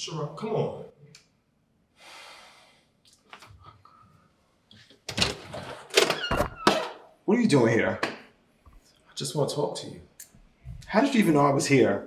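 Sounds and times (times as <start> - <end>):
door lock clattering and door opening: 5.1 - 7.0.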